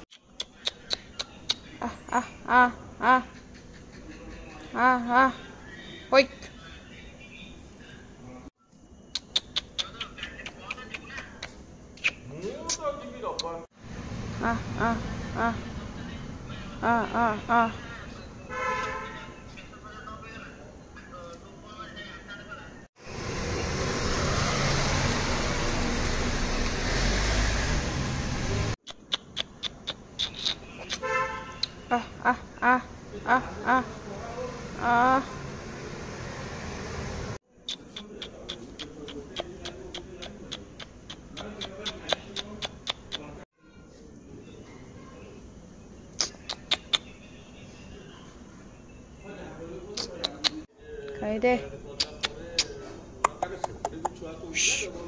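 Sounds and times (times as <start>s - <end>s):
person tongue clicking: 0.1s - 1.7s, 9.1s - 12.8s, 28.8s - 31.0s, 31.6s - 31.8s, 37.7s - 43.3s, 46.2s - 47.1s, 50.0s - 50.6s, 52.0s - 54.2s
road noise hiss: 9.2s - 19.2s, 23.0s - 32.0s, 32.8s - 43.3s
engine rumble: 13.7s - 18.5s, 23.0s - 28.8s, 31.6s - 37.4s.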